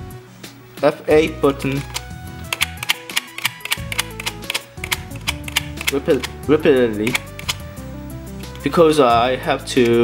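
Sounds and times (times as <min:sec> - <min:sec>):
background music: 0:00.0 - 0:10.0
keyboard key tapping: 0:01.8 - 0:06.4, 0:07.1 - 0:07.6.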